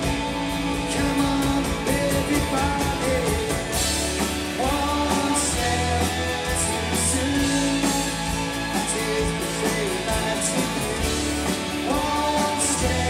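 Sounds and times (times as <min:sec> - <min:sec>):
drums with cymbals: 0:00.0 - 0:13.0
electric and acoustic guitars: 0:00.0 - 0:13.0
lead vocal singing: 0:00.0 - 0:13.0.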